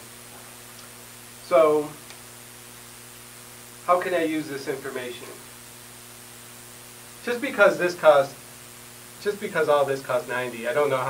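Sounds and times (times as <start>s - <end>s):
faint hiss: 0.0s - 11.0s
low electrical hum: 0.0s - 11.0s.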